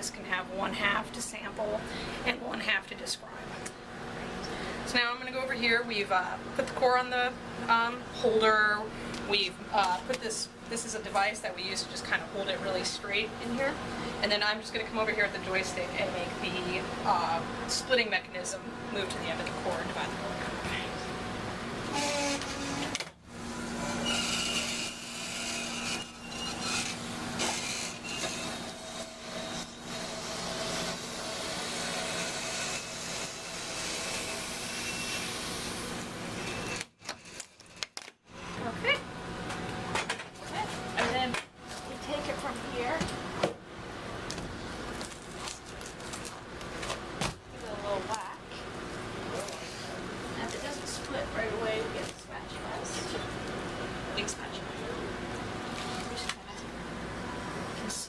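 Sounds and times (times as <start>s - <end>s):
core splitter motor humming: 18.6s - 36.9s.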